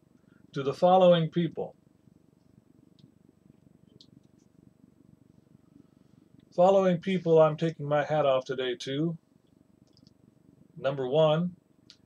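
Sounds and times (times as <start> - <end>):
low steady hum: 0.0 - 12.0
faint clicks: 9.4 - 10.2.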